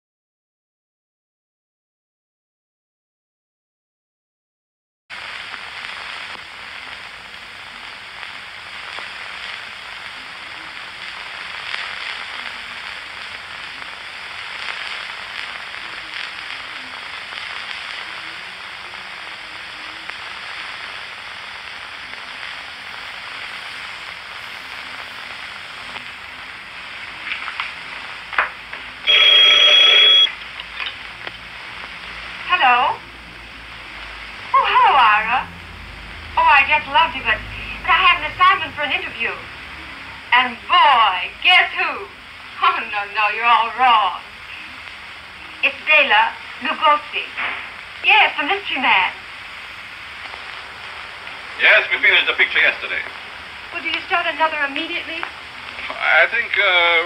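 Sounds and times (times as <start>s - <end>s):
film soundtrack hiss and crackle: 5.1s - 57.0s
telephone bell ringing: 29.1s - 30.3s.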